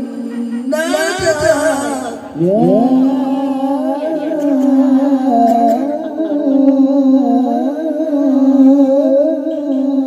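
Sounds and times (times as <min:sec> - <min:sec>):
men singing through microphones: 0:00.0 - 0:10.0.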